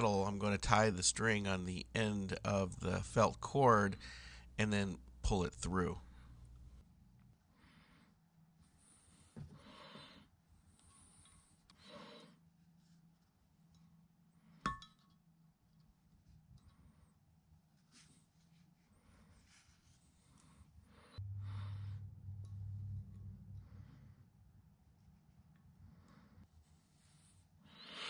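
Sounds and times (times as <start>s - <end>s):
low hum: 20.2s - 26.4s.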